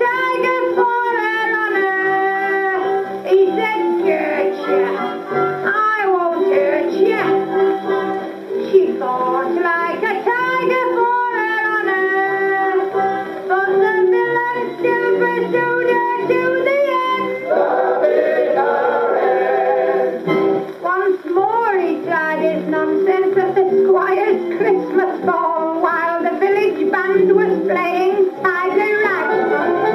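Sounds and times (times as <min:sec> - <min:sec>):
gramophone playing band music: 0:00.0 - 0:29.9
person singing: 0:00.0 - 0:29.9.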